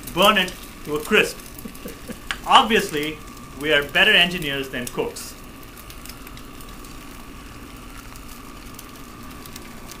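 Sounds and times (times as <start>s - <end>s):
egg sizzling in a pan: 0.0s - 10.0s.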